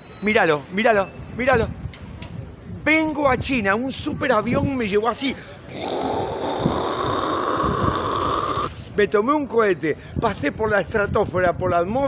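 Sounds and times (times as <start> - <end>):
man imitating jet plane: 5.7 - 8.8.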